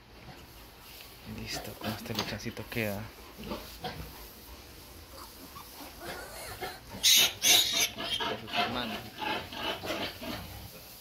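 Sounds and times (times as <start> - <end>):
piglets squealing: 5.1 - 10.5.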